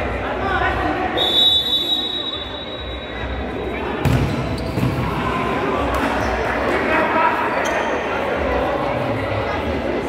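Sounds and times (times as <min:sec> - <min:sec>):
ball kicked and bouncing on court: 0:04.0 - 0:05.2.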